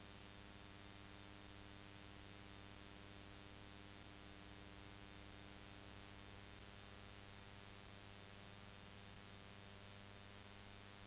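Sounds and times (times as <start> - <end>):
faint steady hum with hiss: 0.0 - 11.0.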